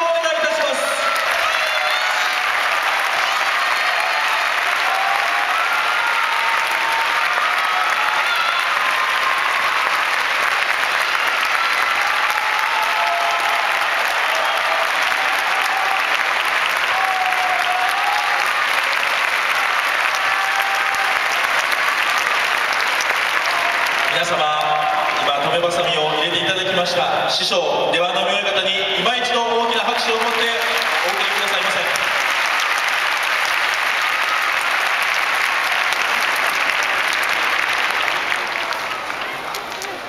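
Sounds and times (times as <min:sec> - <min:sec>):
audience applauding: 0:00.0 - 0:27.1, 0:29.0 - 0:40.0
faint crowd voices: 0:35.4 - 0:40.0.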